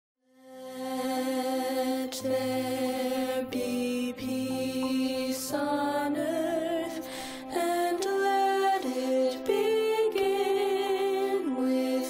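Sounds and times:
girls singing a hymn in harmony: 0:00.5 - 0:12.0.

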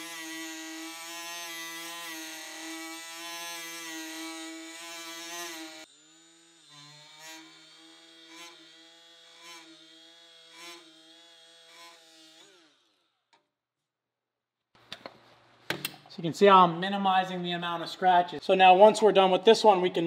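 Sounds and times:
die grinder whining on steel: 0:00.0 - 0:13.4.

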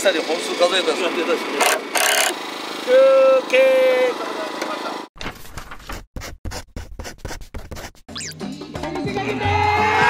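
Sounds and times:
pen scribbling on paper: 0:06.2 - 0:08.0.

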